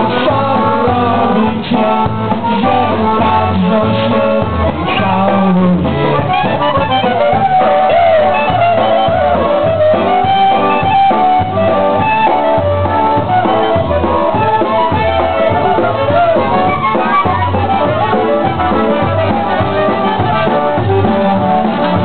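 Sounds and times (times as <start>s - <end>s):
accordion and reeds melody: 0.0s - 22.0s
drum kit: 0.0s - 22.0s.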